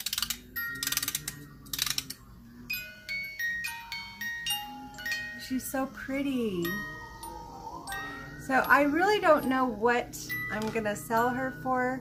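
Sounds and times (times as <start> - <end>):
music box winding ratchet clicks: 0.0 - 2.2
music box tinkling melody: 0.0 - 12.0.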